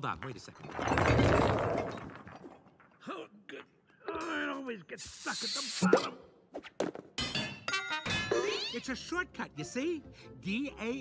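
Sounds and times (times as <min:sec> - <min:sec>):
glass orbs clattering on floor: 0:00.6 - 0:02.8.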